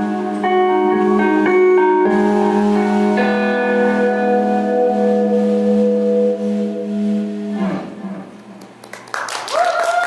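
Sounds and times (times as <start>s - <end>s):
electric guitar note ringing: 0.0s - 8.6s.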